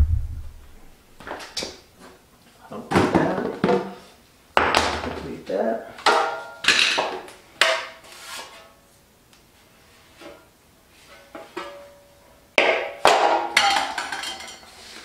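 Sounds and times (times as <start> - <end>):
metal pan clattering: 13.1 - 14.7.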